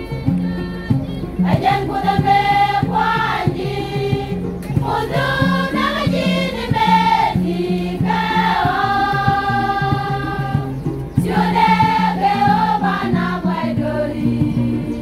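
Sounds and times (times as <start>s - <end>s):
women's choir singing: 1.3s - 15.0s.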